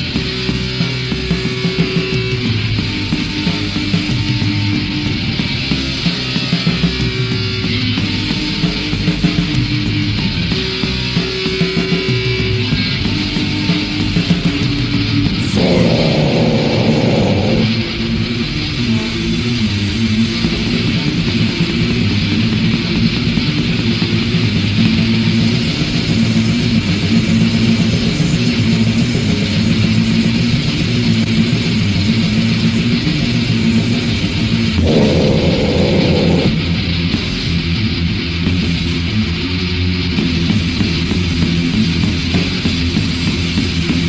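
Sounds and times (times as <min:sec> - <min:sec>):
metal band playing: 0:34.8 - 0:37.0.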